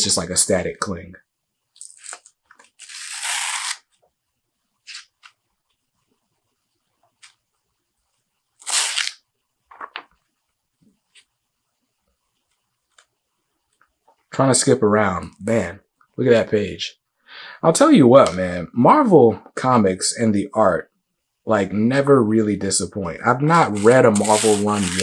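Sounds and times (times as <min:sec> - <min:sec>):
pages turning: 0:04.9 - 0:05.4, 0:08.6 - 0:10.2, 0:23.6 - 0:25.0.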